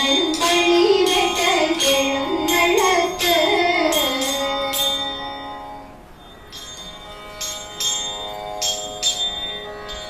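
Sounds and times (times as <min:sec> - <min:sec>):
small bells jingling: 0:00.0 - 0:05.4, 0:06.2 - 0:10.0
sustained instrumental tone: 0:00.0 - 0:10.0.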